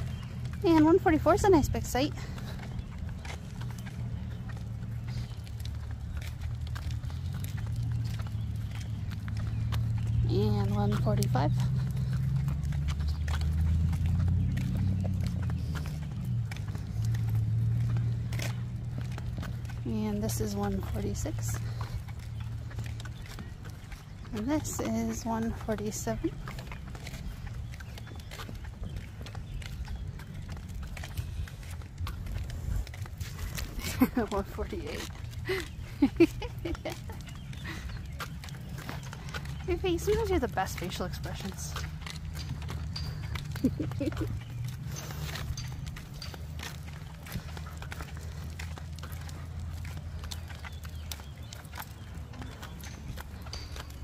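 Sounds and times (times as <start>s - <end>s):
footsteps: 0.0s - 54.0s
stroller wheels rolling on asphalt: 0.0s - 54.0s
wagon clicks and rattles: 0.0s - 54.0s.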